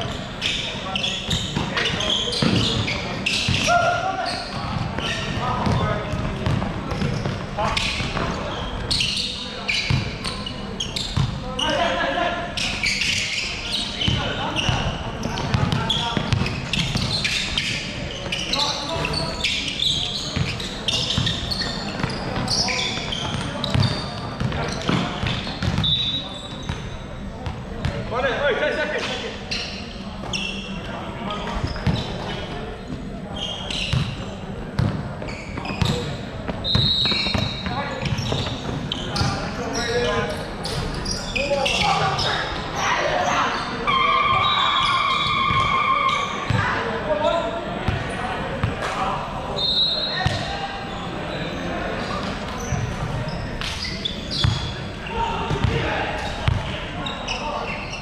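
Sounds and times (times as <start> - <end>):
sneakers squeaking: 0.0 - 58.0
basketball bouncing on court: 1.3 - 3.8, 4.5 - 8.4, 11.1 - 11.4, 14.0 - 17.7, 20.3 - 25.9, 31.6 - 32.4, 33.9 - 39.4, 50.2 - 50.5, 54.4 - 54.8, 55.5 - 55.8, 56.4 - 56.8.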